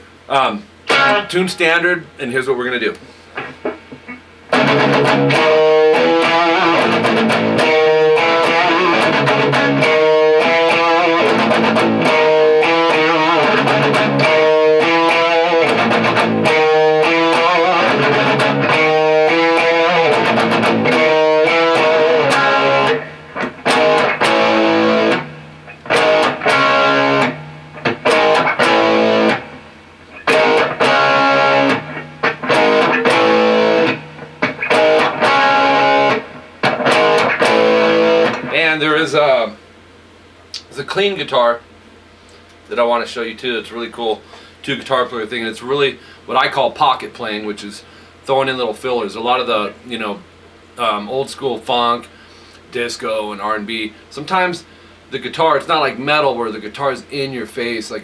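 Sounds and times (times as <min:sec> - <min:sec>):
distorted electric guitar riffs: 0:00.0 - 0:39.5.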